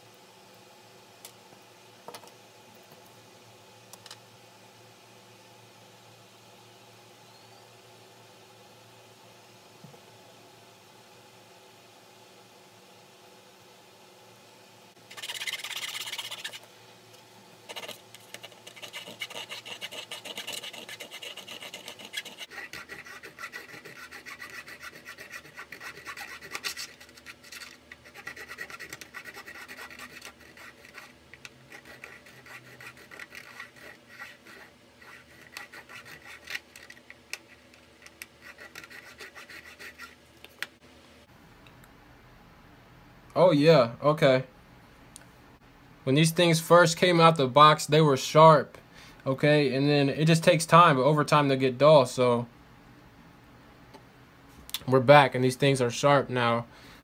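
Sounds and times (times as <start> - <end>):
blade scraping on sharpening plate: 17.7 - 36.6.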